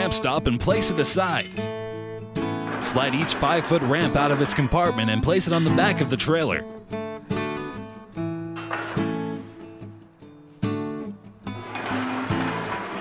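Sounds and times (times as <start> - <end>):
strummed acoustic guitar: 0.0 - 13.0.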